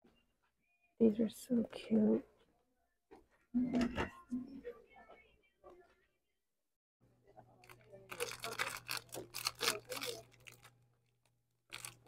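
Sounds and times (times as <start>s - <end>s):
cellophane wrapper crinkling: 7.6s - 12.0s.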